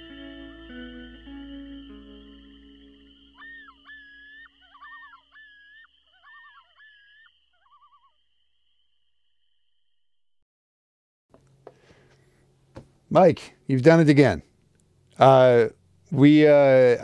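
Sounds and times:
guitar notes: 0.0 - 3.4
crickets chirring: 0.0 - 10.2
loon calls: 0.7 - 8.4.

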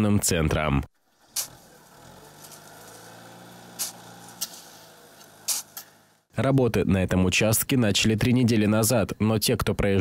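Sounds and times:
engine humming: 0.9 - 6.4
shovels scraping sand: 1.2 - 6.2.

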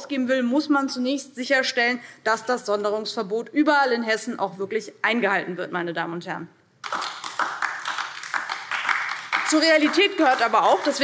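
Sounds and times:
people applauding: 6.8 - 11.0.

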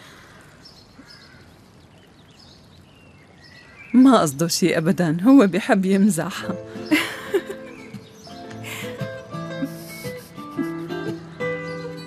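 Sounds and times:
outdoor background ambience: 0.0 - 12.0.

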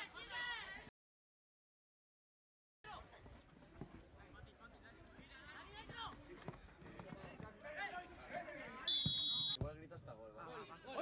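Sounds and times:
referee's whistle blast: 8.9 - 9.6.

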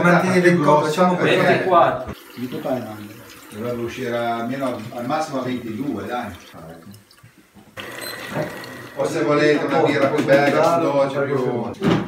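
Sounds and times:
liquid running: 2.0 - 10.9.

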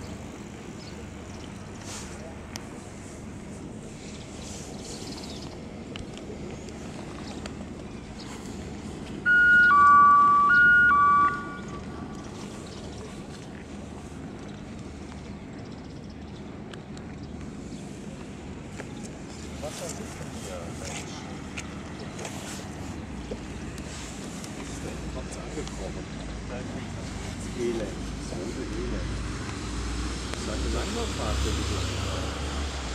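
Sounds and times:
loud two-tone horn: 9.3 - 12.0.

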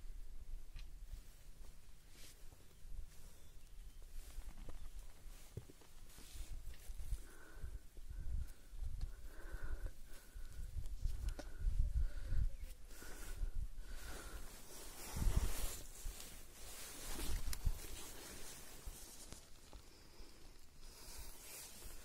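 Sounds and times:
wind buffeting microphone: 7.7 - 15.9.

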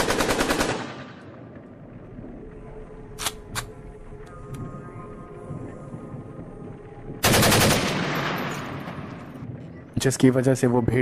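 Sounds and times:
machine gun burst: 7.2 - 8.9.

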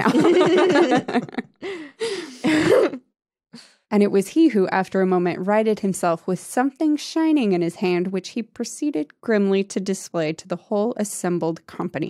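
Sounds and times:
faint breath: 1.6 - 2.6
person's breathy throaty vocal: 1.6 - 3.0, 3.6 - 3.9.

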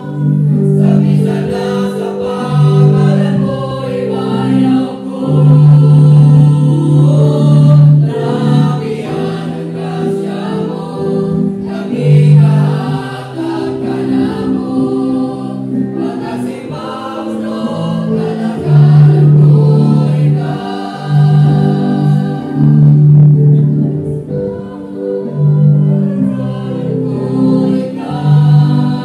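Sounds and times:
mixed choir singing in harmony: 0.0 - 29.0.

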